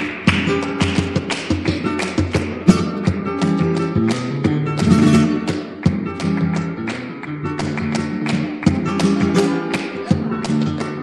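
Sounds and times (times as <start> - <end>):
flamenco guitar chords: 0.0 - 11.0
sharp percussive taps: 0.0 - 11.0.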